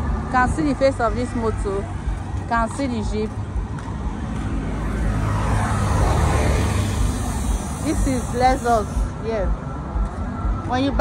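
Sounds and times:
traffic rumble: 0.0 - 11.0
vehicle passing: 0.0 - 11.0.

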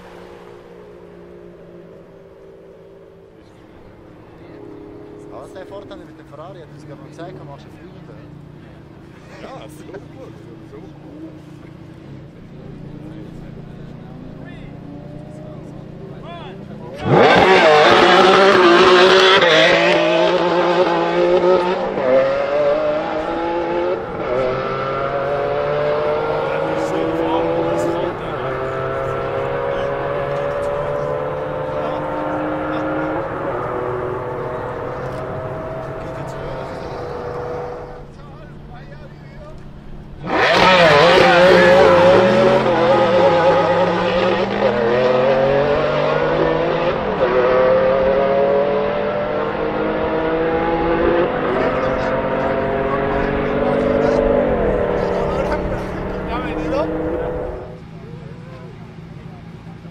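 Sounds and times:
engine shifting up through gears: 0.0 - 59.9
sports car engines at full throttle: 0.0 - 59.9.

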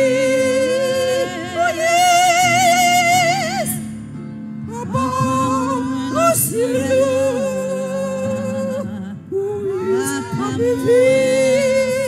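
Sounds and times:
women singing gospel in harmony: 0.0 - 3.8, 4.7 - 12.0.

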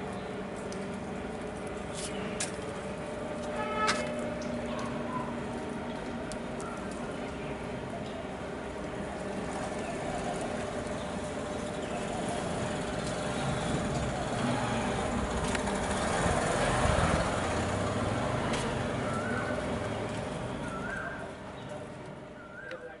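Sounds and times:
motor traffic rumble: 0.0 - 23.0
vehicle passing close: 12.0 - 21.0.

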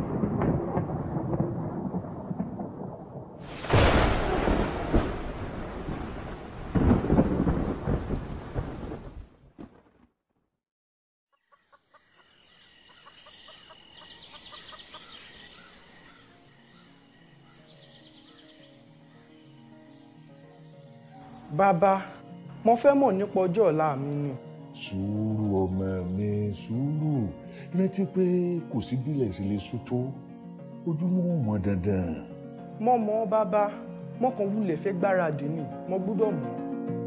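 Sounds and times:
rain: 0.0 - 9.8
loud thunderclaps: 0.0 - 9.9
thunder: 0.0 - 10.0
faint music: 15.8 - 37.0.

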